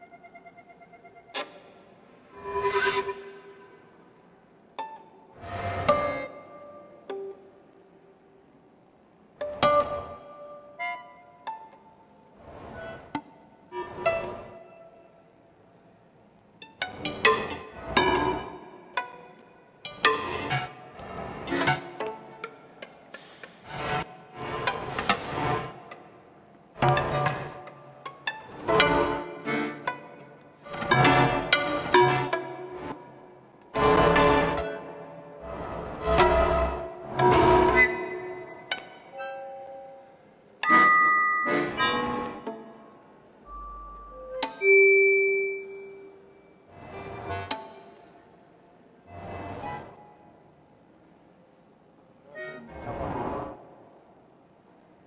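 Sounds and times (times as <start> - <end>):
violin notes: 0.0 - 8.2, 26.8 - 33.3, 34.0 - 46.5
button accordion notes: 40.6 - 42.4.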